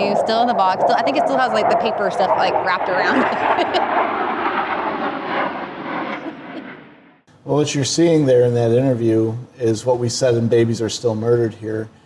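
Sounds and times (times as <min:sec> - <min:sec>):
airplane engine passing overhead: 0:00.0 - 0:12.0.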